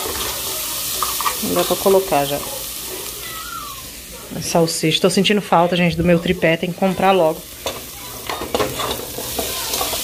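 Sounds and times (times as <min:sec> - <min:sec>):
lard sizzling in a pot: 0:00.0 - 0:10.0.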